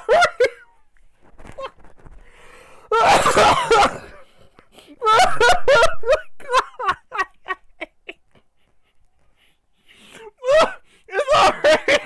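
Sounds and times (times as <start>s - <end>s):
man laughing hard: 0.0s - 0.6s, 2.9s - 4.4s, 5.0s - 9.5s, 10.2s - 12.0s.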